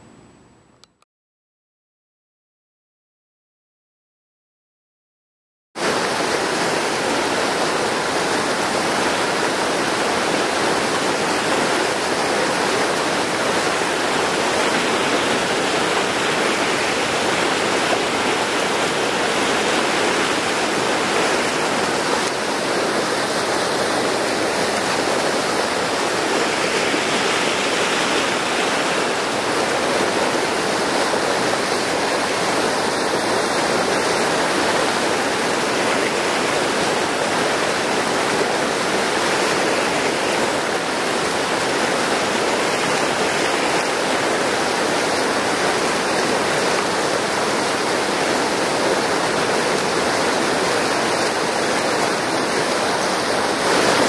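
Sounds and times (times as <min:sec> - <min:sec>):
river rushing over rocks: 0:05.8 - 0:54.0.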